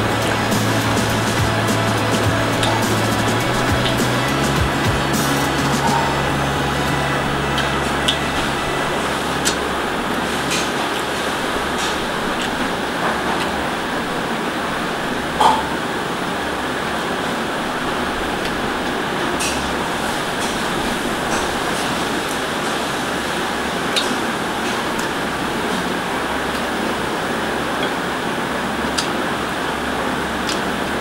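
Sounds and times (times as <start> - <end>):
room fan whirring: 0.0 - 31.0.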